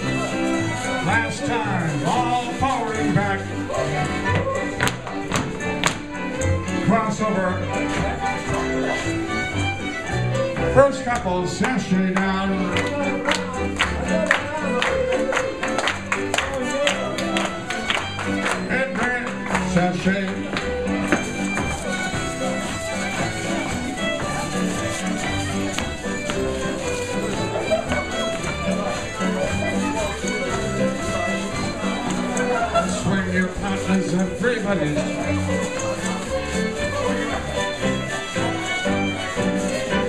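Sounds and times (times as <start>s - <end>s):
fiddles playing a dance tune: 0.0s - 40.0s
keyboard and guitar backing: 0.0s - 40.0s.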